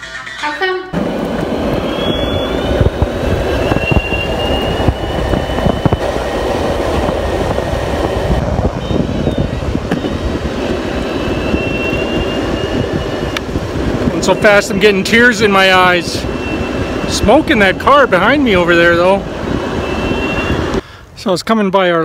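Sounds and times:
wheels rumbling on road: 0.9s - 21.2s
high electric motor whine: 1.0s - 14.2s
wind on microphone: 1.0s - 20.8s.

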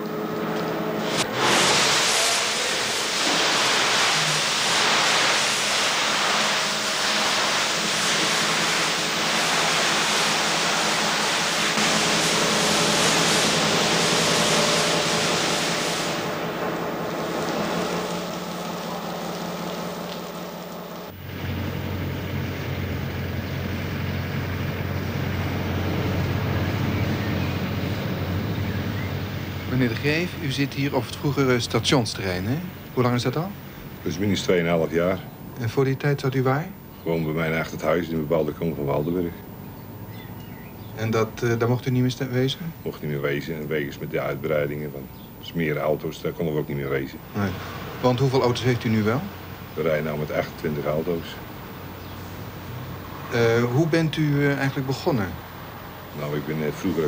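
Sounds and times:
machinery rushing hiss: 0.9s - 34.6s, 46.6s - 57.0s.

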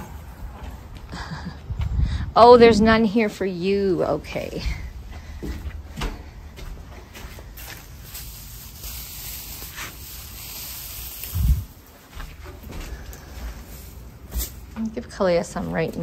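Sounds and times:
dry hay rustling and crackling: 6.6s - 16.0s.

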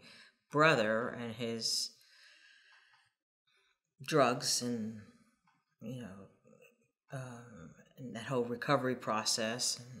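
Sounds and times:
faint breath: 2.0s - 3.8s.

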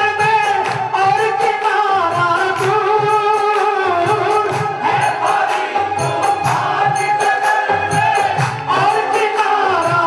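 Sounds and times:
instrumental accompaniment: 0.0s - 10.0s
man singing into a microphone: 0.0s - 10.0s
steady drum beat: 0.0s - 10.0s.

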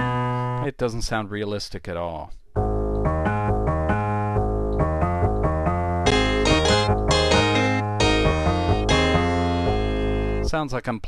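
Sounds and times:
sampled piano notes: 3.0s - 10.5s.

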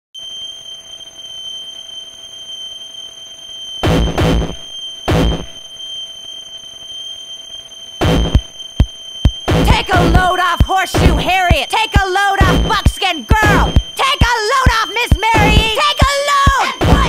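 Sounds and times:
steady hiss with high whines: 0.2s - 17.0s
harsh distorted noise blasts: 3.8s - 5.6s, 8.0s - 17.0s.

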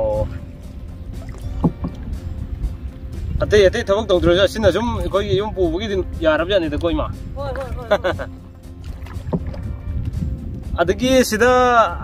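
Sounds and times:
wind rumble on microphone: 0.0s - 12.0s
person speaking: 7.4s - 8.3s.

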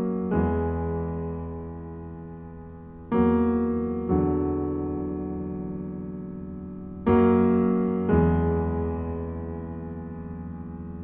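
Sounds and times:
piano chords ringing: 0.0s - 11.0s.

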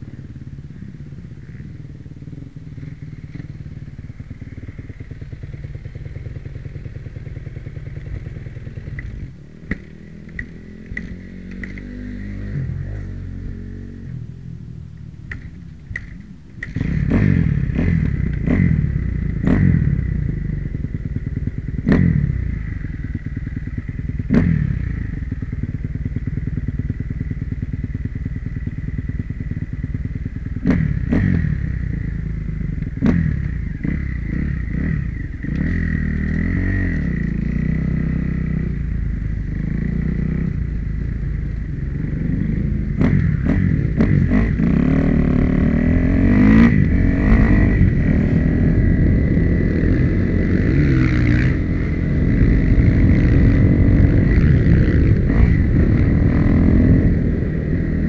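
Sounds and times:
motorcycle engine idling: 0.0s - 11.8s, 14.2s - 36.4s, 37.0s - 58.0s
motorcycle throttle blips: 0.1s - 13.2s.

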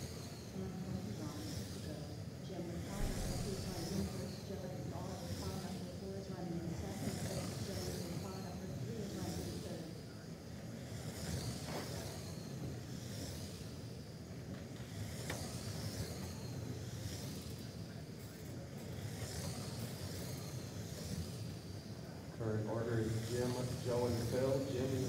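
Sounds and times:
steady hum: 0.0s - 10.2s, 22.4s - 25.0s
toy race car motors whining: 0.0s - 25.0s.

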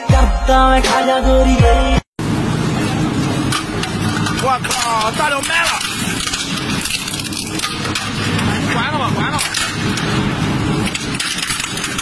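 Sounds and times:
shredder mechanical rumble: 2.2s - 12.0s.

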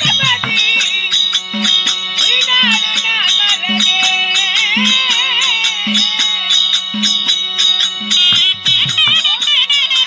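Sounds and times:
drum beat: 0.0s - 10.0s
reed wind instrument melody: 2.2s - 10.0s.

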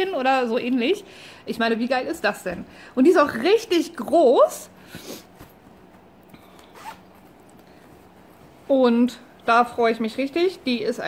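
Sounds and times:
fabric case zipper pulled open: 6.5s - 7.4s.

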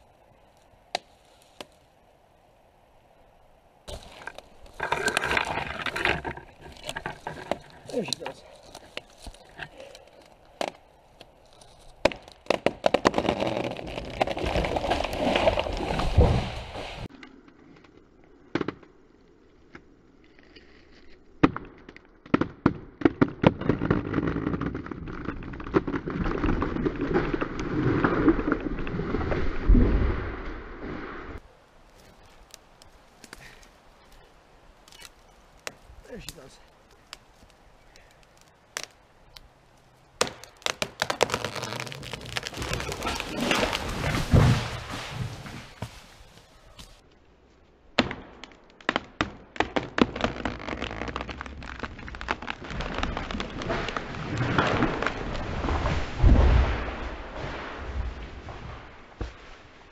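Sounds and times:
wood cracking: 3.9s - 30.1s, 31.4s - 59.7s
tree crashing through branches: 12.5s - 17.1s, 40.2s - 47.0s, 49.6s - 59.7s.

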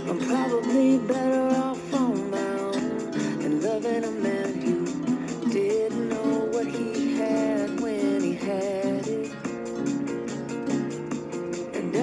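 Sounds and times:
man singing: 0.0s - 10.0s, 11.5s - 12.0s
acoustic guitar strumming: 0.0s - 12.0s.

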